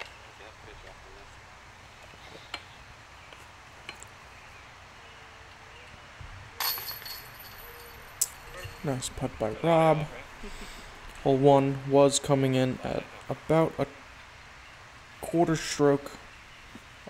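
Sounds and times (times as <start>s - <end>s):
metallic chain jingle: 6.6s - 8.9s
sharp metal clink: 6.6s - 8.9s.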